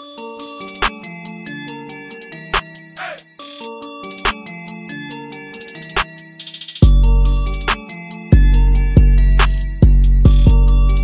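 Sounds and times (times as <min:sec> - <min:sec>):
bell-like synth melody: 0:00.0 - 0:11.0
hi-hat ticks: 0:08.4 - 0:11.0.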